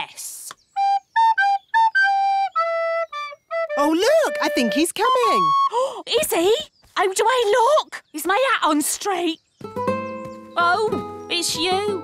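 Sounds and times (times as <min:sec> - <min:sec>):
recorder playing a simple tune: 0:00.8 - 0:05.9.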